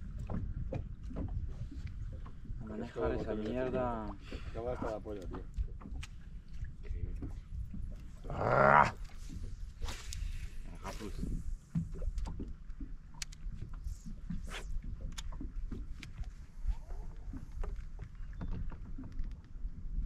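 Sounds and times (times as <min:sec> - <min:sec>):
water lapping against boat hull: 0:00.0 - 0:20.0.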